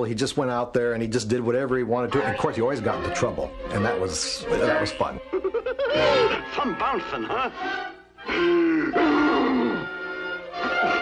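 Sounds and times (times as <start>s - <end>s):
orchestral film score: 6.0s - 11.0s
cartoon character frightened groan: 8.2s - 10.0s.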